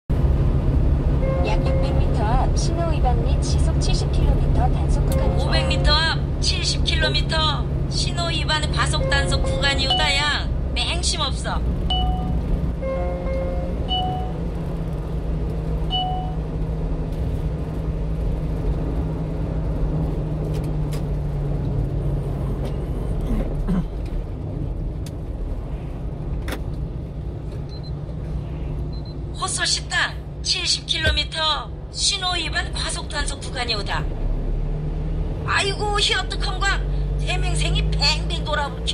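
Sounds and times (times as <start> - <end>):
truck engine and road rumble: 0.1 - 38.9
short electronic beeps: 11.9 - 12.4, 13.3 - 14.4, 15.9 - 16.4, 27.7 - 28.0, 28.9 - 29.2.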